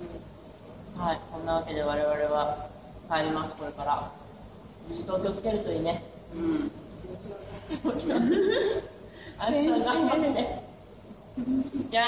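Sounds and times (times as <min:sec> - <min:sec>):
woman talking: 0:09.4 - 0:10.7.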